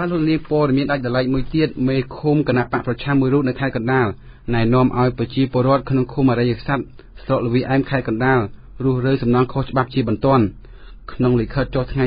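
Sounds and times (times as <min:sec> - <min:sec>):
man reading news: 0:00.0 - 0:12.0.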